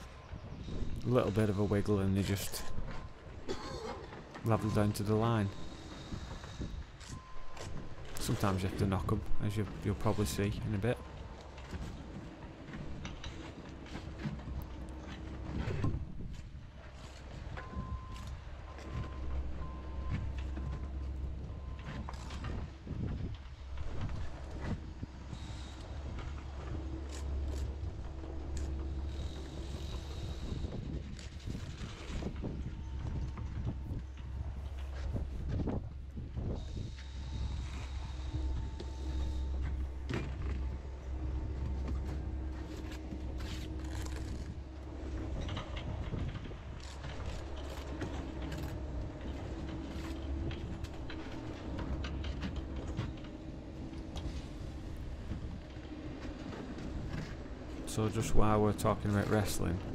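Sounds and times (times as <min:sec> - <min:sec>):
faint hum: 0:00.0 - 0:59.9
low rumble: 0:04.3 - 0:59.9.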